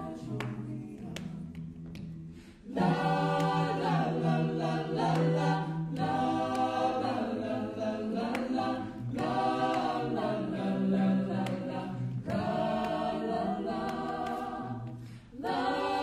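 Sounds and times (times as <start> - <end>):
vocal ensemble singing in harmony: 0.0 - 1.5, 2.3 - 16.0
singers breathing: 2.2 - 2.7, 14.9 - 15.4.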